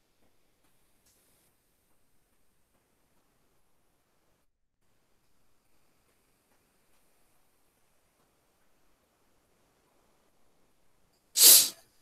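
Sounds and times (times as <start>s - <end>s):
breath burst into microphone: 11.4s - 11.8s.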